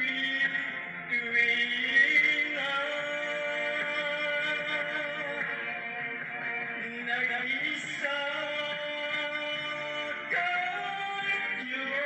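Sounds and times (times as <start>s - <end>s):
backing music: 0.0s - 12.0s
man singing a ballad: 0.0s - 12.0s.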